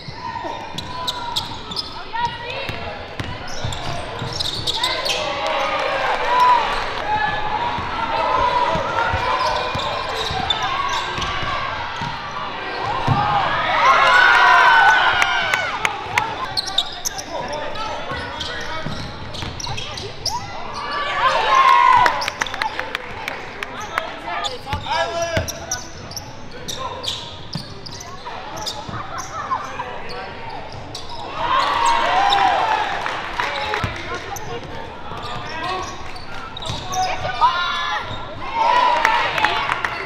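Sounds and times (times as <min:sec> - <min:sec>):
sneakers squeaking: 0:00.0 - 0:32.8, 0:33.4 - 0:40.0
basketball bouncing: 0:02.7 - 0:04.4.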